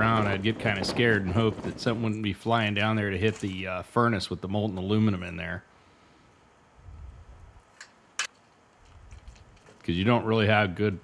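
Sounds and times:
faint low rumble: 0.0 - 7.7.

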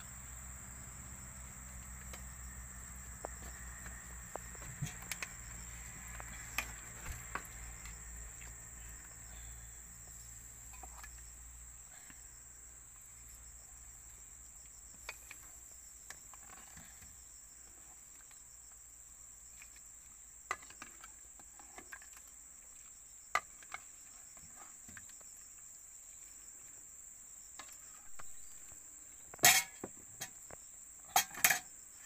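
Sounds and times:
forest insects droning: 0.0 - 32.0.

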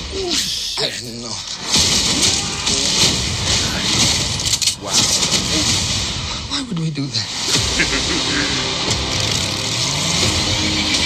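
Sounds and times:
dense effects noise: 0.0 - 11.0
engines revving: 7.3 - 11.0.

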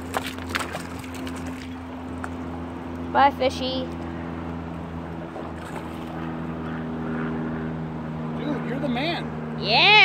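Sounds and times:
river water splashing: 0.0 - 8.4.

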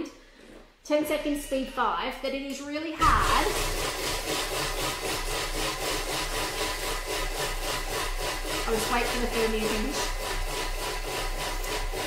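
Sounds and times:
food processor whirring: 3.0 - 12.0.

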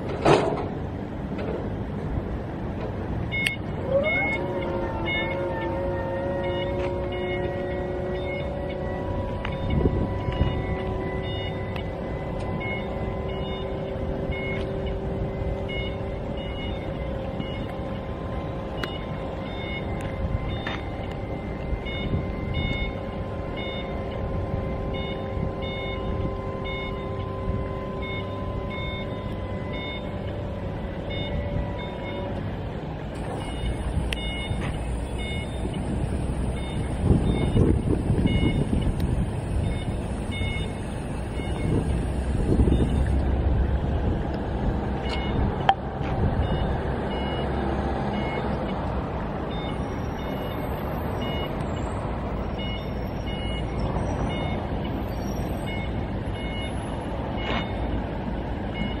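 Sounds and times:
motion alarm beeping: 3.3 - 4.4, 6.4 - 30.3, 31.0 - 32.4, 33.2 - 43.2, 45.0 - 45.8, 46.4 - 58.0, 58.7 - 59.0.

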